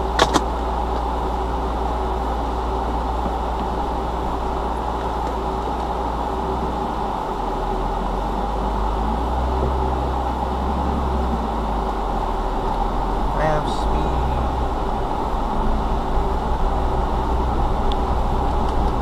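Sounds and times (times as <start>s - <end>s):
car engine idling: 0.0s - 19.0s.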